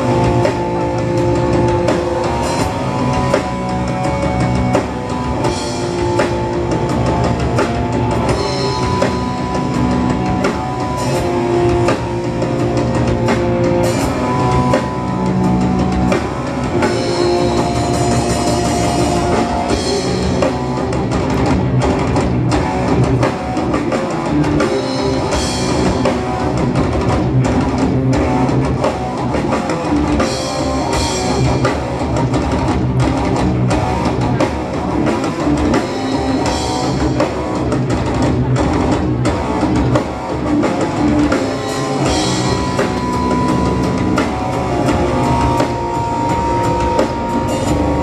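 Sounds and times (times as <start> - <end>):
distorted electric guitars: 0.0 - 48.0
fast drum kit: 0.0 - 48.0.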